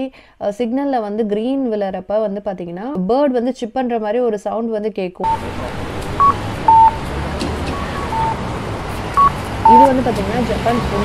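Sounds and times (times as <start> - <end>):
traffic noise: 5.2 - 11.0
two-note crossing signal chime: 9.2 - 10.0.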